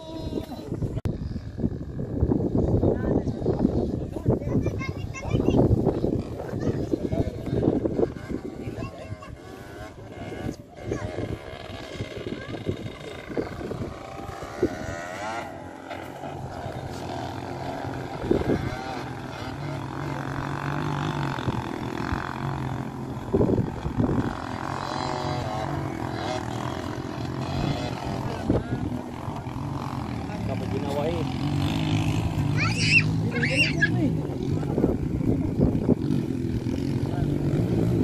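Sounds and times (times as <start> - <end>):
distant motorcycle engines droning: 0.0 - 38.0
wind buffeting microphone: 0.0 - 38.0.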